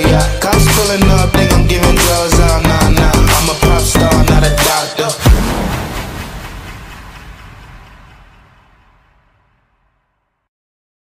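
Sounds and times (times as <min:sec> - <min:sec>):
hip-hop track: 0:00.0 - 0:08.7.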